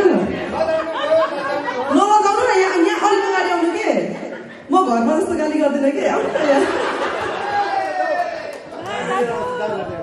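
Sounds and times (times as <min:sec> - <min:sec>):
voices chattering in a hall: 0:00.0 - 0:10.0.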